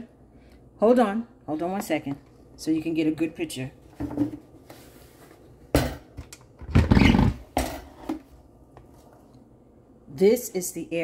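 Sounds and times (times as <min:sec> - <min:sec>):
knocks and clunks on countertop: 0:04.0 - 0:04.5, 0:05.7 - 0:08.3.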